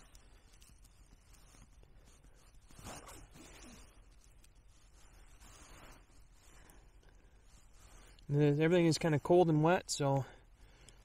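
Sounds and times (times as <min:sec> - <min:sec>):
twigs being handled: 0:00.0 - 0:10.2
small fire crackling: 0:00.0 - 0:11.0.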